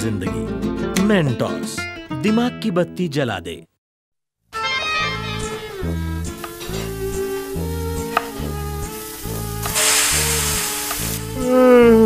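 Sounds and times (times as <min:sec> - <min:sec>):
background music with beat: 0:04.6 - 0:11.3
food sizzling in hot oil: 0:05.7 - 0:11.5.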